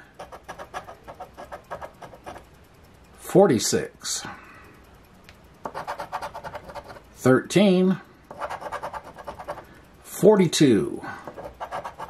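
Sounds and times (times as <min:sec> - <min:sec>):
scratching lottery ticket: 0:00.0 - 0:02.5, 0:05.6 - 0:07.2, 0:08.3 - 0:09.7, 0:11.2 - 0:12.0.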